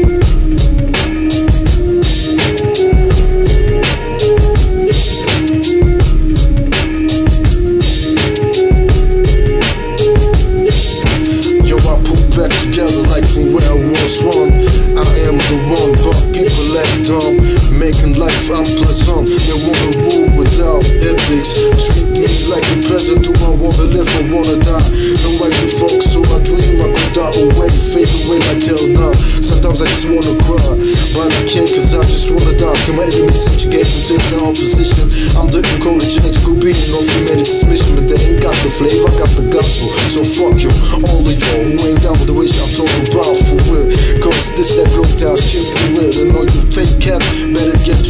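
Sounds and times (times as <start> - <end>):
rapping over a drum beat: 0.0 - 48.0
repeating melodic line: 0.0 - 48.0.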